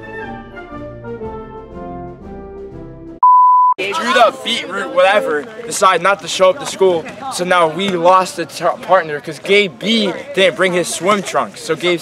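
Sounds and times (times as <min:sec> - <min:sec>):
instrumental background music: 0:00.0 - 0:03.2
high-pitched electronic beep: 0:03.2 - 0:03.8.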